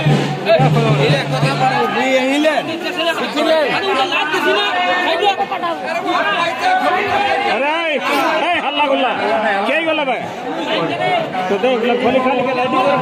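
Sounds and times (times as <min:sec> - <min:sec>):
loud crowd chatter: 0:00.0 - 0:13.0.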